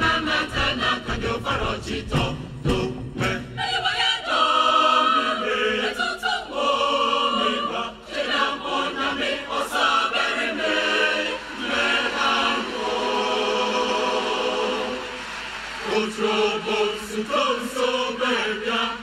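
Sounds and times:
mixed choir singing in harmony: 0.0s - 19.0s.

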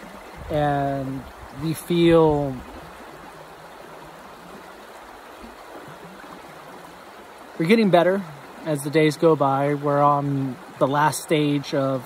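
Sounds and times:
creek water rushing: 0.0s - 12.0s.

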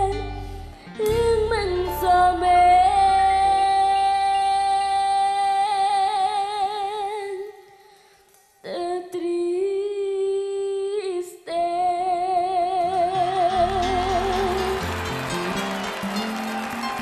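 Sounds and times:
girl singing with vibrato: 0.0s - 7.8s, 8.6s - 14.8s.

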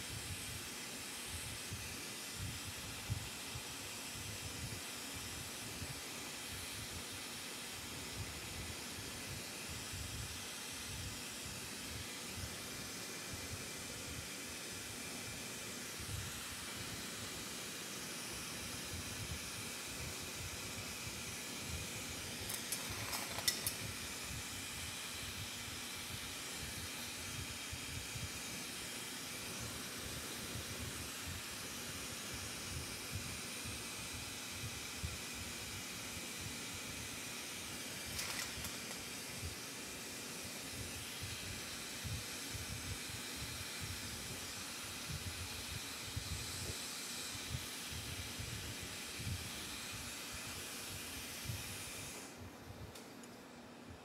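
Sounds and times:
torch burning with steady hiss: 0.0s - 54.0s.

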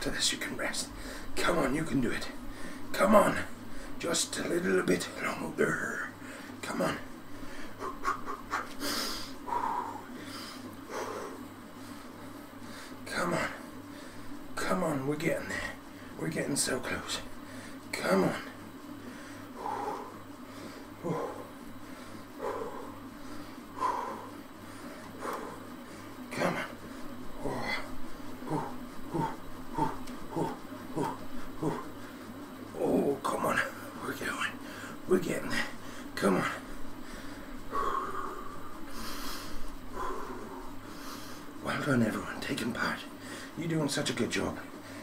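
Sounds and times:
low steady hum: 0.0s - 45.0s
man breathing hard: 0.9s - 1.4s, 2.4s - 2.9s, 3.6s - 4.0s, 6.2s - 6.6s, 7.2s - 13.1s, 13.8s - 14.4s, 17.3s - 17.9s, 18.8s - 32.4s, 34.6s - 35.0s, 35.6s - 41.6s, 43.1s - 43.6s.

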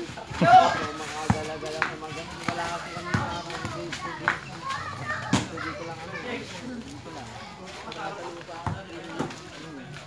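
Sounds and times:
young players calling and chattering: 0.0s - 10.0s
basketball bouncing on concrete: 1.2s - 4.4s, 8.5s - 9.4s.

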